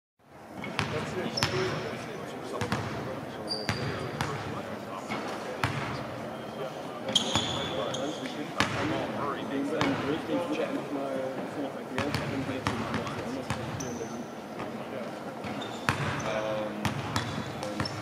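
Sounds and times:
basketballs bouncing on hardwood: 15.4s - 18.0s.

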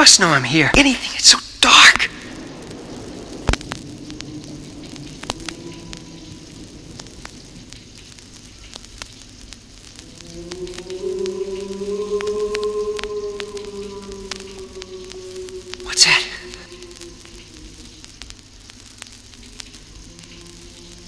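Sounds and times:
vinyl record crackle and clicks: 0.0s - 21.0s
faint low drone: 2.1s - 21.0s.

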